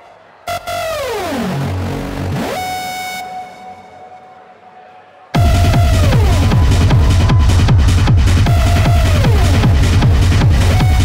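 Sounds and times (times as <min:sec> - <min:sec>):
synthesizer tone diving in pitch: 0:00.5 - 0:04.2.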